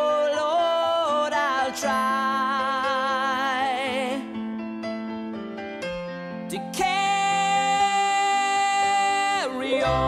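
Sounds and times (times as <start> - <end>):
soft musical accompaniment: 0.0 - 10.0
person singing a long note: 6.8 - 10.0.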